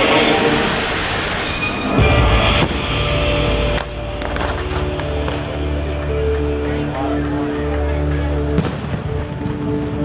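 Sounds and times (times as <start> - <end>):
fireworks rumbling: 0.0 - 10.0
soundtrack music: 0.0 - 10.0.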